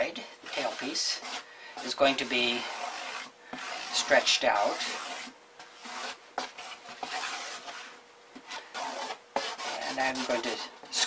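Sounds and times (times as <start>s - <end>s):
marker scratching on cardboard: 0.4s - 11.0s.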